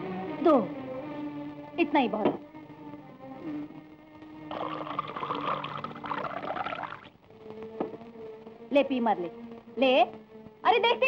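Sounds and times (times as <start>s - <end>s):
soft background music: 0.0s - 11.0s
milk pouring into glass: 4.5s - 7.1s.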